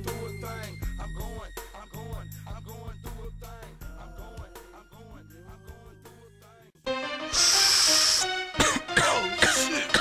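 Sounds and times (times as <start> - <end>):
hiss: 7.3 - 8.3
cough-like vocal sounds: 8.6 - 10.0.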